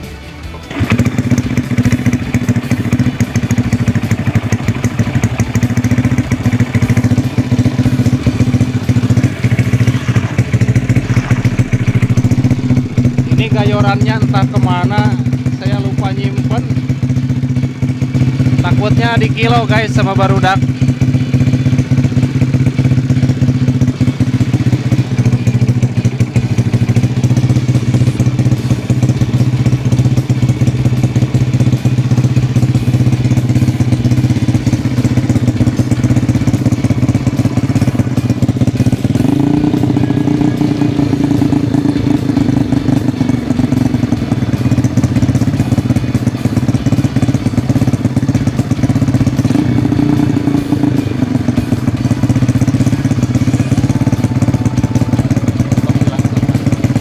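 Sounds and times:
single-cylinder engine running: 0.0s - 57.0s.

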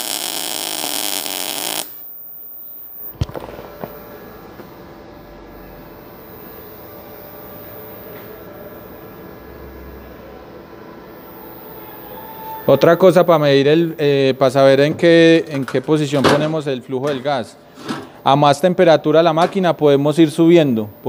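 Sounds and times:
welding arc buzzing: 0.0s - 9.1s
faint low hum: 2.0s - 15.8s.

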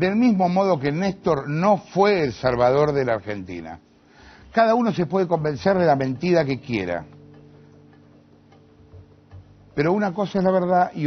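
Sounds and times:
faint background music chord: 0.0s - 11.0s.

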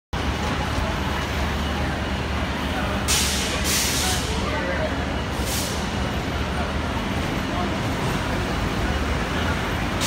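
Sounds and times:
idling bus and vehicle engines: 0.2s - 10.0s.

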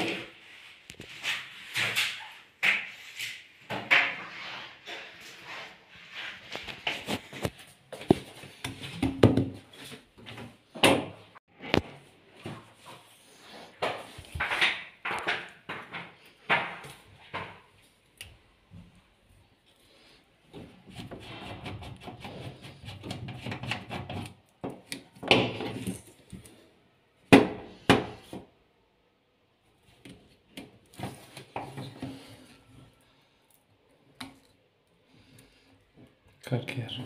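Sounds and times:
handling knocks and rustles: 6.2s - 18.1s.

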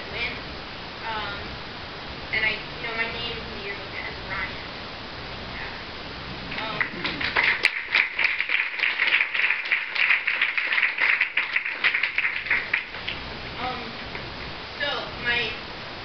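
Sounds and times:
audience applauding: 6.5s - 13.2s.

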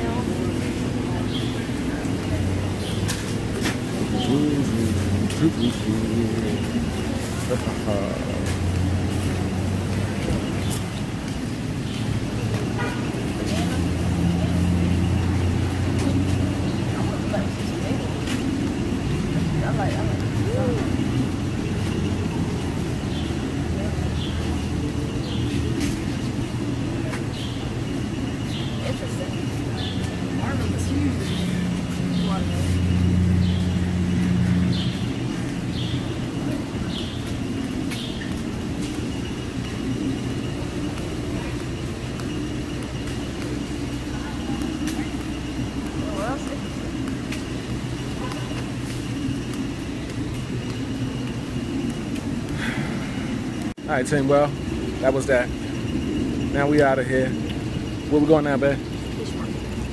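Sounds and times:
faint background voices: 0.0s - 51.9s
vehicle engine rumble: 0.0s - 59.9s.

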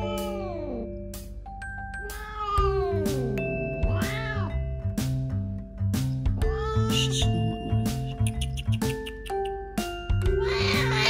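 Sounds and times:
background music with mallet notes: 0.0s - 11.0s
cat yowling: 2.1s - 3.0s.

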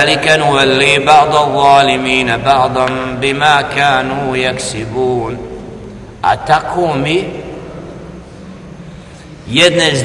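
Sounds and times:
man chanting melodically: 0.0s - 7.5s, 9.4s - 10.0s.

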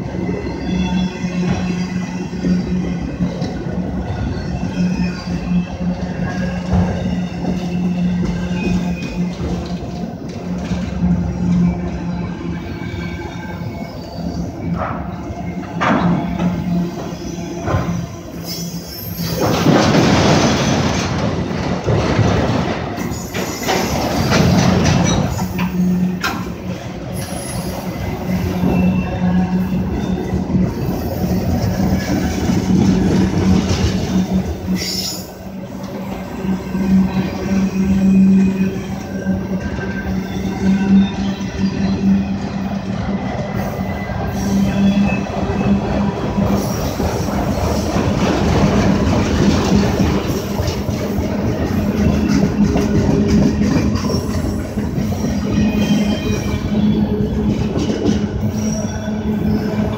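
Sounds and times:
train wheels rumbling on rails: 0.0s - 59.9s
wheel squeal: 27.2s - 32.4s, 43.5s - 47.3s, 53.8s - 59.9s.

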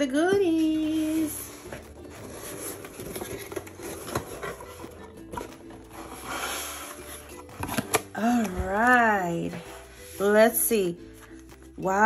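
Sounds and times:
cardboard lid rustle: 1.6s - 8.1s.

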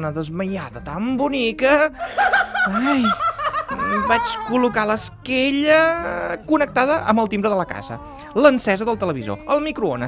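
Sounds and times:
person laughing in short chuckles: 2.2s - 4.7s.

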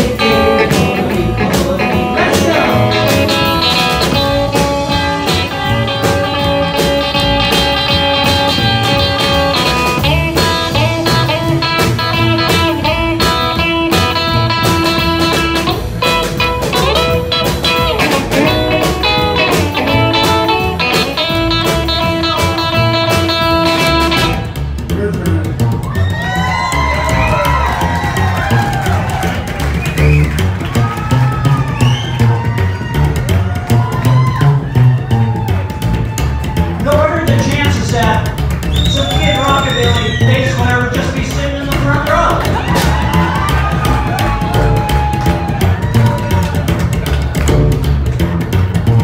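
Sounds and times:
electric guitar lines: 0.0s - 24.6s
upright bass plucked and slapped: 0.0s - 49.0s
fast beat of sharp hits: 35.1s - 49.0s.

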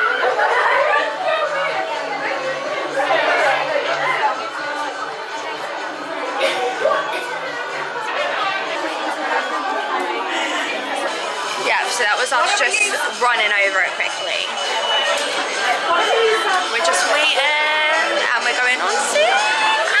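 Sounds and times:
people chattering: 0.0s - 20.0s.

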